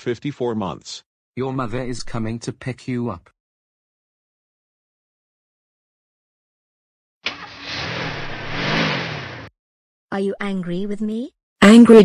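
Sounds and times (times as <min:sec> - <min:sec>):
car engine accelerating: 0:07.3 - 0:09.5.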